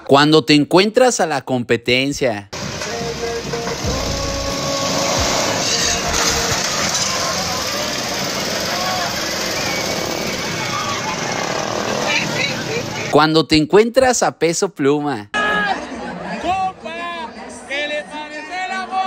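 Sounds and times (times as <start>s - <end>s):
indistinct crowd voices: 2.6s - 13.1s, 15.4s - 19.0s
continuous rumble: 2.7s - 13.1s.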